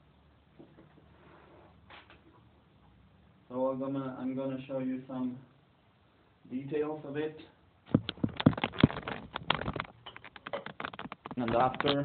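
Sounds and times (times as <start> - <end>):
tablet cover rubbing and knocking: 7.9 - 12.0.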